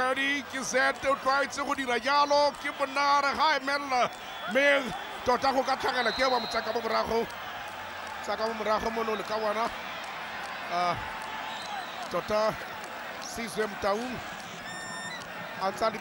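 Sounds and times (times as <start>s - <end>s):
commentator speaking: 0.0s - 7.3s, 13.2s - 14.2s, 15.6s - 16.0s
stadium crowd murmur: 0.0s - 16.0s.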